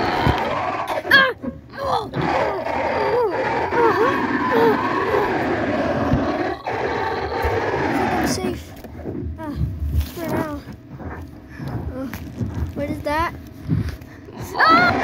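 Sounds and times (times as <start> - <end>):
person crying out and groaning: 0.0 - 8.6, 14.3 - 15.0.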